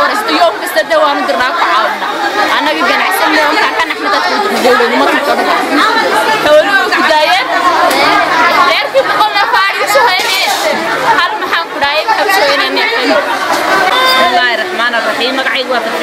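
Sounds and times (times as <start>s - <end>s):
several voices talking: 0.0s - 16.0s.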